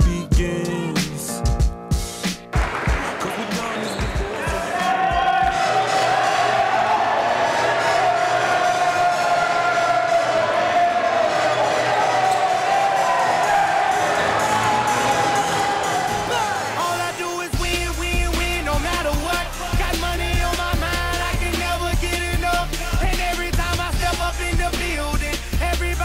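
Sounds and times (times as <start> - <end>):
crowd noise in a gym: 2.7 - 17.6.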